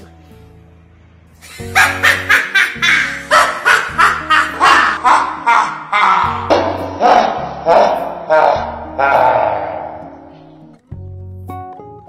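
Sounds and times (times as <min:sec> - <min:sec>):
background music with bass: 0:00.0 - 0:12.0
child cackling: 0:01.5 - 0:09.4.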